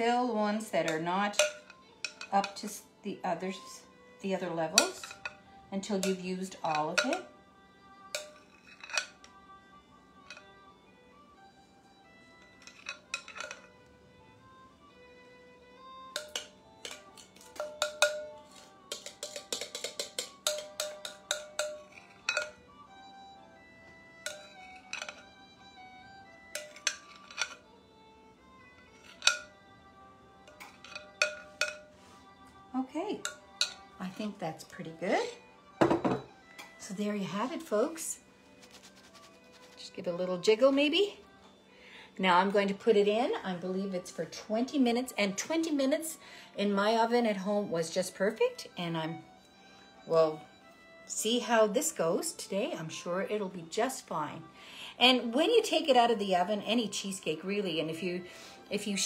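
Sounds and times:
metal spoon clinking on glass bowl: 0.8s - 2.8s, 4.8s - 7.3s, 8.2s - 9.3s, 12.6s - 13.7s, 16.2s - 22.6s, 24.2s - 25.2s, 26.5s - 27.6s, 29.0s - 29.6s, 30.5s - 31.9s, 33.2s - 34.3s.

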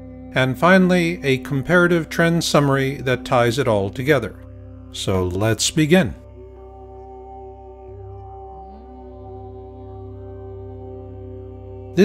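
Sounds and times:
ambient drone music: 0.0s - 12.0s.

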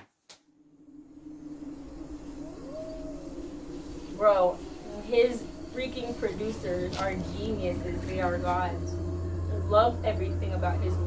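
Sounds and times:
low steady drone: 0.5s - 11.0s.

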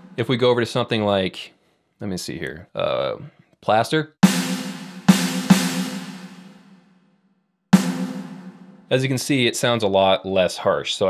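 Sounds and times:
electronic snare hits with reverb: 4.2s - 6.8s, 7.8s - 8.9s.

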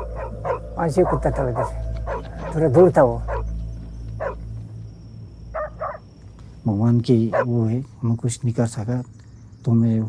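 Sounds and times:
dogs barking: 0.0s - 4.7s, 5.5s - 6.0s, 7.2s - 7.7s.

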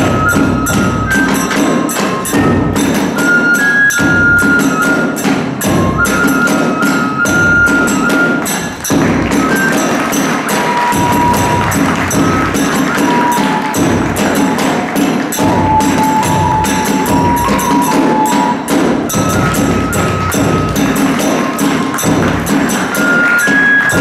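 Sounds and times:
bamboo flute melody: 0.0s - 24.0s
large drum strokes: 0.0s - 24.0s
small hand cymbals clashing: 0.0s - 24.0s.

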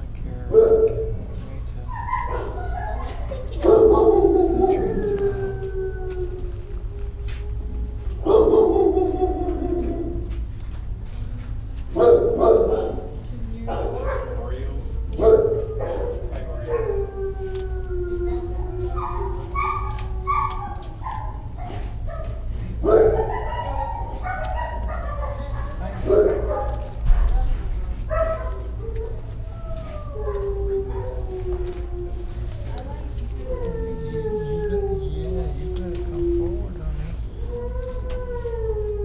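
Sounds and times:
dogs barking: 0.5s - 5.5s, 8.2s - 10.4s, 11.9s - 17.3s, 18.3s - 31.8s
dogs howling: 0.5s - 10.6s, 11.9s - 39.0s.

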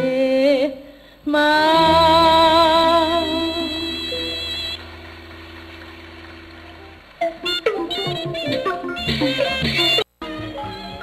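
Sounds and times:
traditional-style music quick notes: 3.7s - 11.0s.

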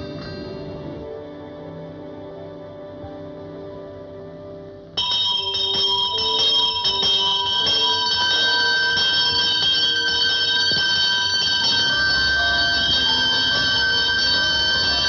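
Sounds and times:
bells ringing: 5.0s - 15.0s.

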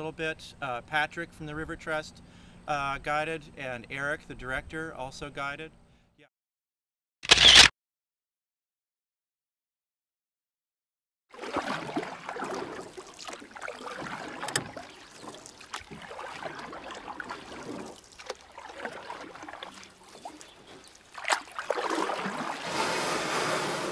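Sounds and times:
water splashing around paddles: 11.3s - 23.9s.

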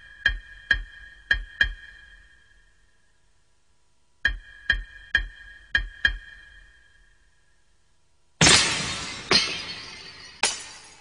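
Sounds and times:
cymbal-like percussion strikes: 8.4s - 11.0s.

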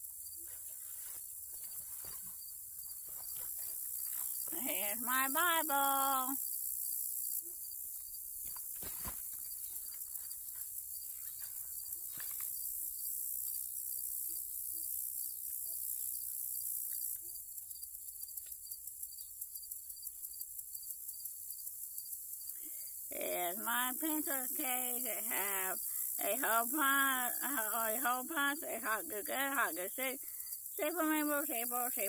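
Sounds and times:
field insects chorus: 0.0s - 32.0s.

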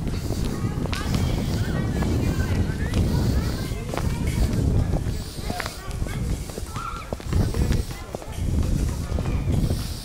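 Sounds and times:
faint voices: 0.0s - 10.0s
footsteps on paved road: 0.0s - 10.0s
low rumbling wind: 0.0s - 10.0s
microphone handling noise: 0.0s - 10.0s.

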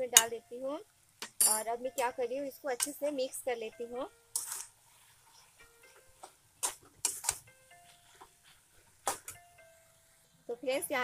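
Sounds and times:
soft background music: 0.0s - 11.0s
metal spatula scraping a pan: 4.4s - 6.0s.

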